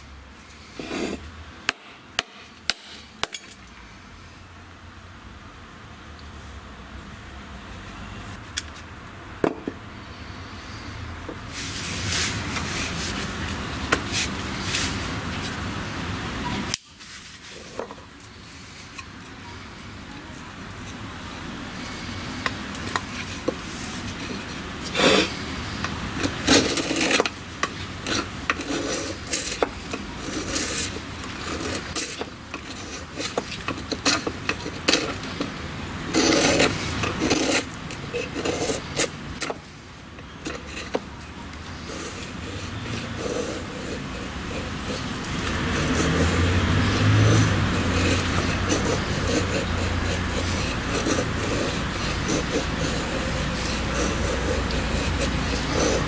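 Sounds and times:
knife carving wood: 0.7s - 3.6s, 21.7s - 56.0s.

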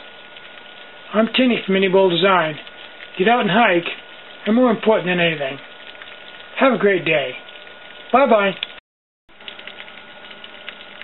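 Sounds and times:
alcohol stove hissing and crackling: 0.0s - 11.0s.

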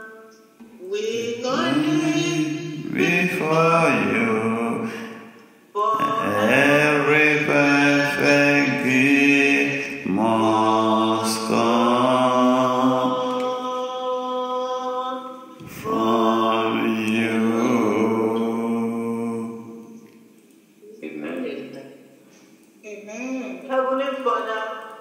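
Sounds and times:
unaccompanied singing: 0.0s - 20.1s.

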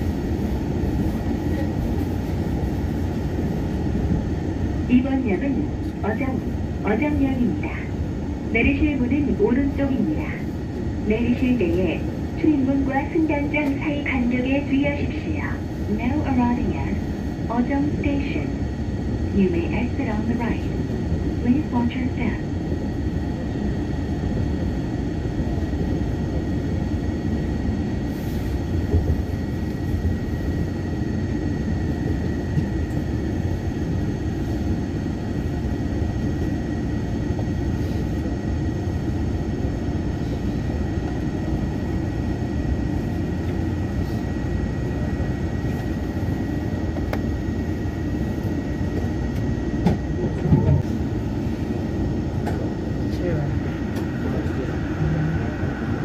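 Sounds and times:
faint steady whine: 0.0s - 56.0s
train rumble and hum: 0.0s - 56.0s.

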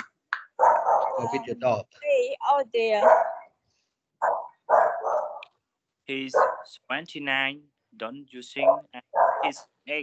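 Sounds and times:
dog barking: 0.6s - 1.4s, 2.9s - 3.5s, 4.2s - 5.4s, 6.2s - 6.8s, 8.6s - 9.7s.

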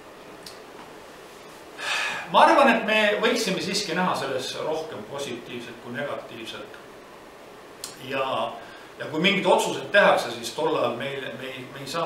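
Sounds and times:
man's quick intake of breath: 1.8s - 2.3s.

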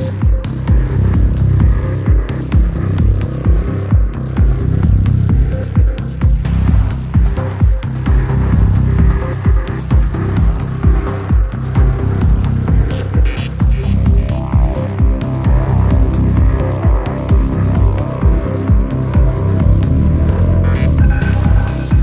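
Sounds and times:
deep bass line: 0.0s - 22.0s
downtempo electronic music: 0.0s - 22.0s
kick drum beat: 0.0s - 22.0s.

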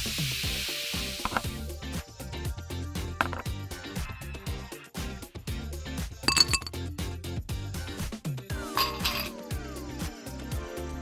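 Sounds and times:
ice cubes clinking against glass: 6.3s - 6.8s, 8.7s - 9.4s.

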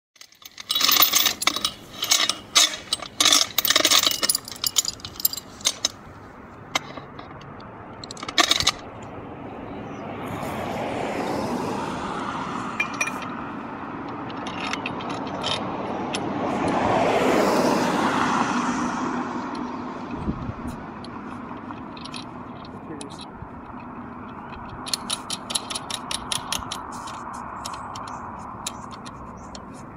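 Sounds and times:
steel chain clinking and rattling: 0.2s - 9.0s, 12.8s - 13.4s, 14.0s - 16.5s, 19.5s - 29.9s
passing traffic rushing: 0.2s - 29.9s.

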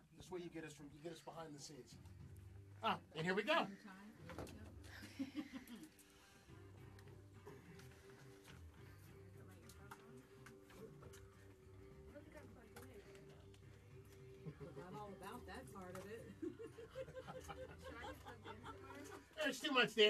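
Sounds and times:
faint theme music: 0.0s - 20.0s.

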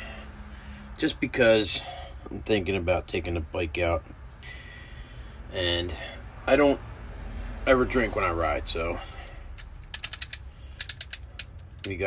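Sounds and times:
utility knife slider ratcheting: 9.6s - 12.0s.

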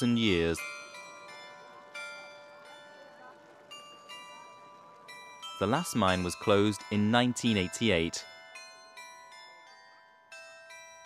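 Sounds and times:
carillon bells chiming faintly: 0.0s - 11.0s.

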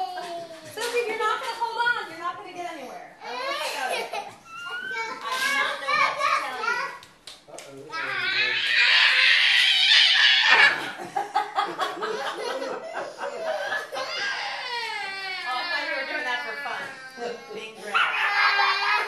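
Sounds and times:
children calling and laughing: 0.0s - 2.1s, 2.8s - 7.2s, 7.9s - 19.0s
child shrieking: 8.0s - 10.8s, 14.0s - 19.0s.

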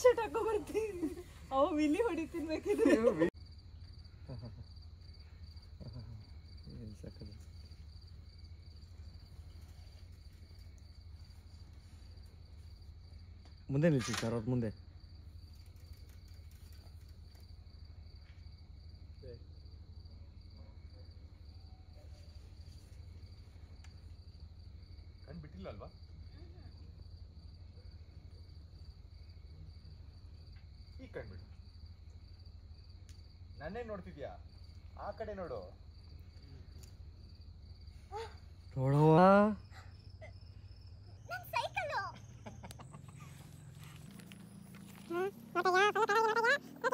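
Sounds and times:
crickets chirping: 0.0s - 46.9s.

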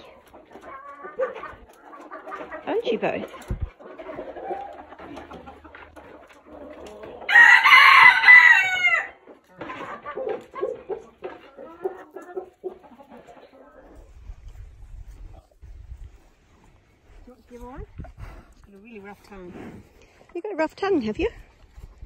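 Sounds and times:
hens clucking: 0.0s - 22.0s
rooster crowing: 7.3s - 9.2s.

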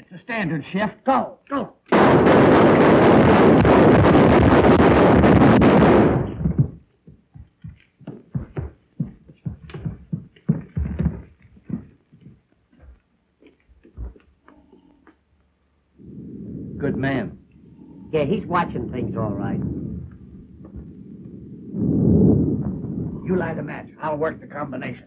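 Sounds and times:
knocks and clatters: 5.6s - 14.3s.

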